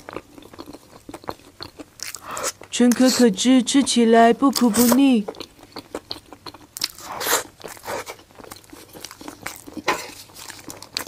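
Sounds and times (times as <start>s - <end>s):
wet chewing: 0.0s - 11.0s.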